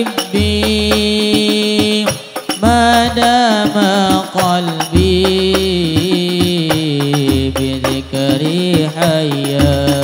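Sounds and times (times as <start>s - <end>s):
frame drums beating: 0.0s - 10.0s.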